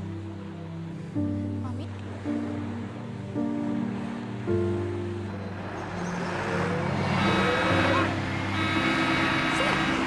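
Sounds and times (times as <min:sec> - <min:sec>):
background music: 0:00.0 - 0:10.0
truck passing: 0:01.9 - 0:10.0.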